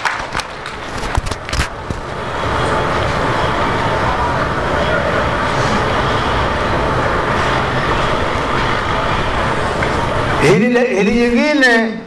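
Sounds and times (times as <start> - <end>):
loud noisy rumble with hiss: 0.4 - 10.6.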